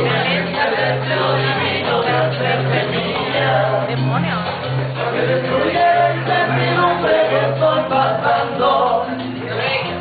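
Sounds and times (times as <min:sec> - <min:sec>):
amplified backing music: 0:00.0 - 0:10.0
men singing into microphones: 0:00.0 - 0:10.0.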